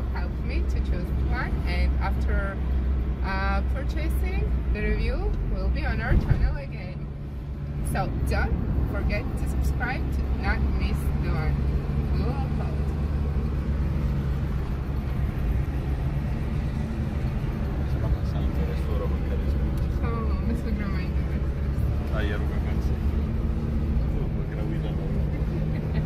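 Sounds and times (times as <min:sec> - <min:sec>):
car engine and road drone: 0:00.0 - 0:26.0.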